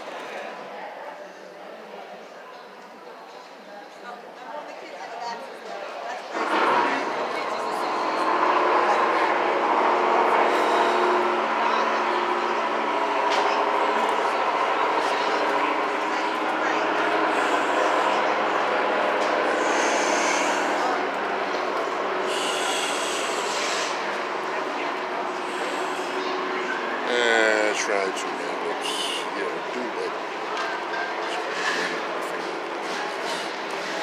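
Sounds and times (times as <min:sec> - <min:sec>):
chatter of many people: 0:00.0 - 0:34.0.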